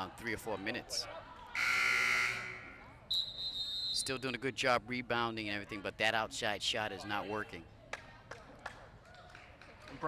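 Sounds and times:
scoreboard buzzer: 0:01.6 - 0:02.7
referee's whistle: 0:01.6 - 0:04.4.

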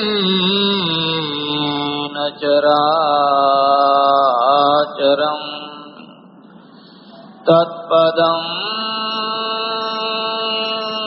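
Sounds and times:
man chanting in long notes: 0:07.4 - 0:11.0.

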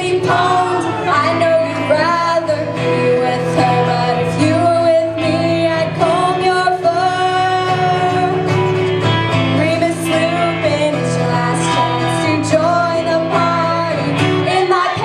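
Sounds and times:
woman singing: 0:00.0 - 0:08.6, 0:09.3 - 0:15.0
acoustic guitars strumming: 0:00.0 - 0:15.0.

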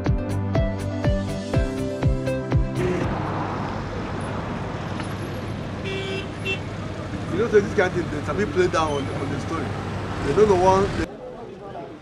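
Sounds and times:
road traffic noise: 0:01.3 - 0:12.0
vehicle horn tooting: 0:05.8 - 0:06.8.

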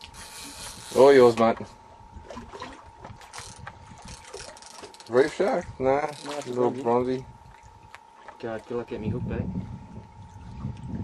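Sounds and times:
fishing reel clicking: 0:00.0 - 0:01.4, 0:03.3 - 0:05.3, 0:06.0 - 0:06.5.

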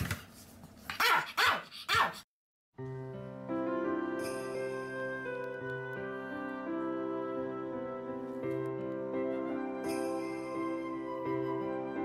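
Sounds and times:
small dog barking: 0:00.9 - 0:02.2
music: 0:02.8 - 0:12.0.

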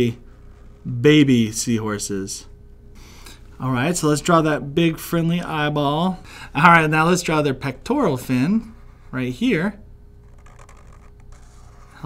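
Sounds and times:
faint hum: 0:00.0 - 0:12.0
marker scratching on paper: 0:10.2 - 0:12.0.

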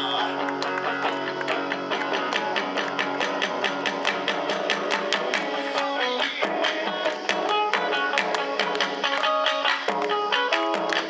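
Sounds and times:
electric guitar strummed riff: 0:00.0 - 0:11.0.

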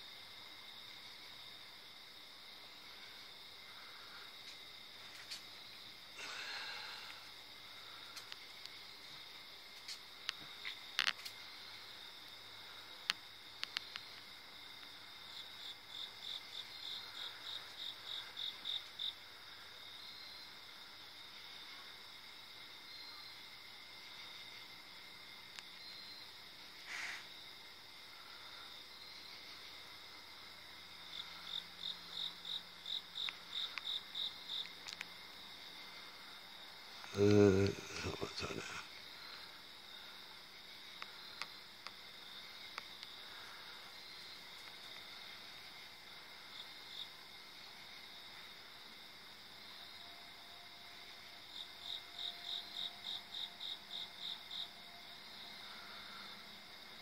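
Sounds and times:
crickets trilling: 0:00.0 - 0:57.0
insect calling in rhythmic pulses: 0:00.0 - 0:57.0.

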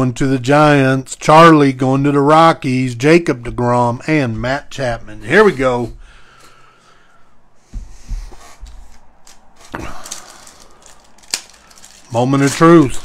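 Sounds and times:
soft knocks: 0:07.6 - 0:09.0
card pack wrapper crinkling: 0:09.2 - 0:13.0.

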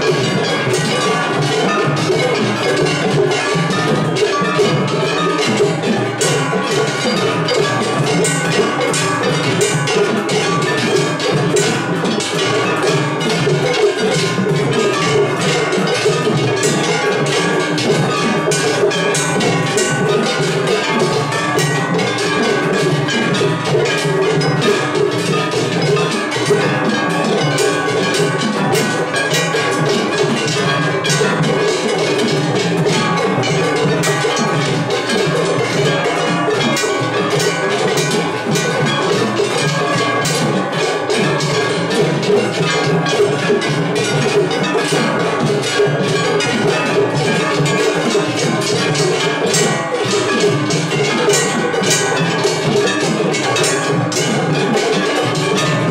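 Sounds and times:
hand-held gongs struck: 0:00.0 - 0:55.9
taiko drums: 0:00.0 - 0:55.9.

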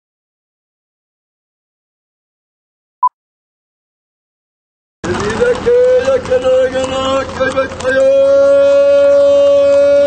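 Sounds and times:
man's long held shout: 0:08.0 - 0:10.0.

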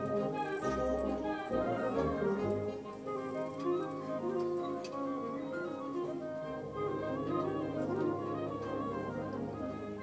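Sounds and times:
wind band playing soft notes: 0:00.0 - 0:10.0.

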